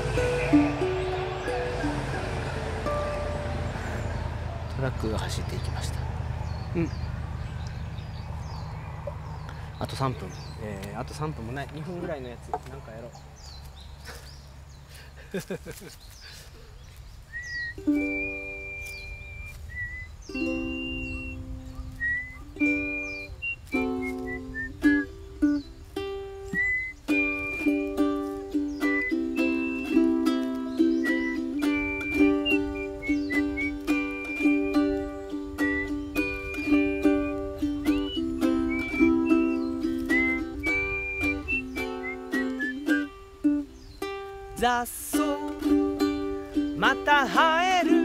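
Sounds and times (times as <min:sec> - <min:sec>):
ukulele strummed chords: 0:00.0 - 0:04.2, 0:17.8 - 0:19.5, 0:20.3 - 0:48.0
person whistling a melody: 0:17.3 - 0:25.6, 0:26.4 - 0:43.6.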